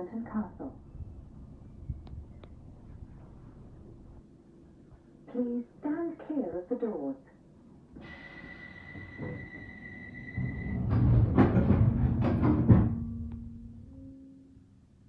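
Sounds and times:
train low hum: 0.0s - 15.0s
high warning tone: 8.0s - 10.9s
sliding doors shutting with thumps: 10.4s - 13.0s.

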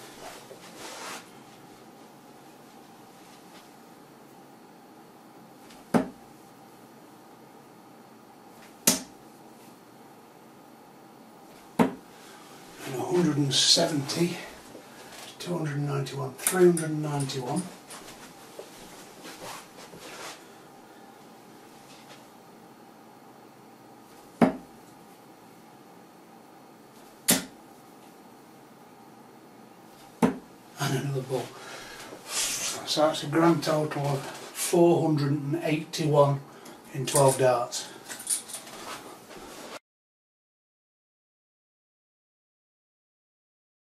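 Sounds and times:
darts striking dartboard: 5.9s - 6.2s, 8.8s - 9.1s, 11.8s - 12.0s, 24.4s - 24.7s, 27.2s - 27.6s, 30.2s - 30.4s.

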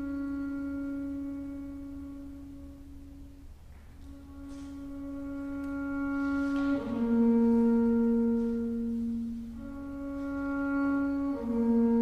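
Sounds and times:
bowed double bass note: 0.0s - 12.0s.

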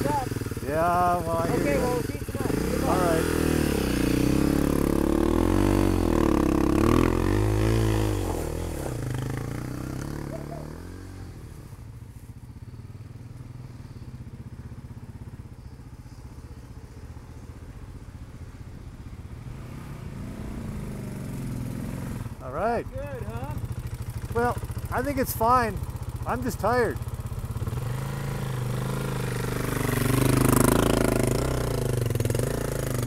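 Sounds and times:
dirt bike engine revving: 0.0s - 11.6s, 19.4s - 22.6s, 23.2s - 33.0s.

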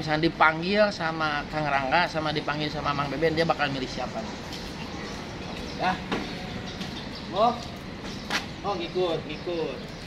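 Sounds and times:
outdoor traffic noise: 0.0s - 10.0s.

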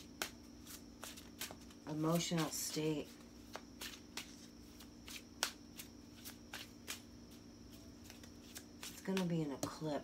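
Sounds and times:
cards shuffled by hand: 0.0s - 9.9s.

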